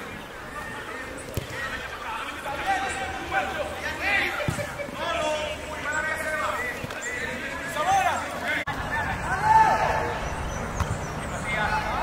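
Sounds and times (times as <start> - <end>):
background noise: 0.0 - 12.0
faint voices calling and talking: 0.0 - 12.0.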